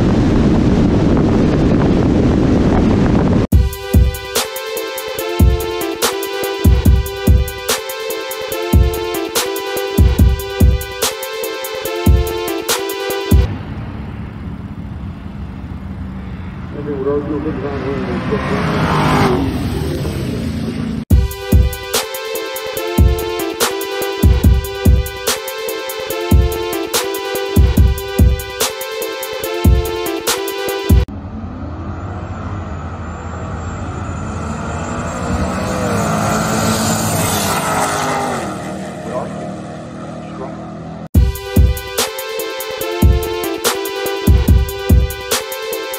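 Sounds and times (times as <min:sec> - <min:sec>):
race car engines at full throttle: 0:00.0 - 0:03.6, 0:11.8 - 0:21.2, 0:29.8 - 0:41.2
car engines idling: 0:13.4 - 0:18.7, 0:37.5 - 0:41.2.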